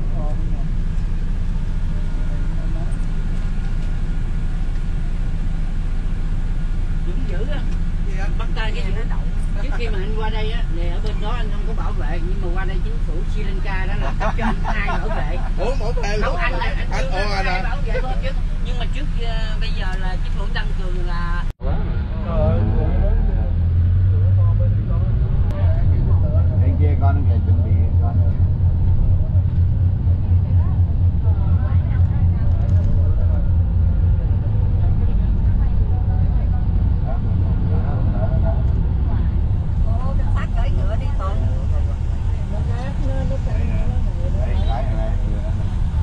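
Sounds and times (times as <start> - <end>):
minibus engine and road noise: 0.0 - 46.0
passengers chattering: 0.0 - 46.0.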